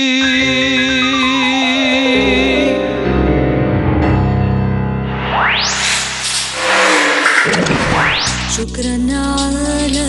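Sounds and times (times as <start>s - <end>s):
rising sweep: 5.0s - 8.6s
whoosh sound effect: 5.0s - 8.6s.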